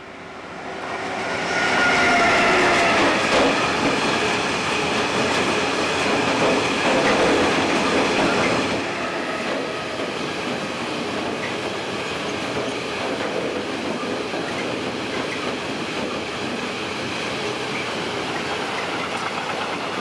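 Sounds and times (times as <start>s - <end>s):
freight train wheels clattering on rails: 2.6s - 20.0s.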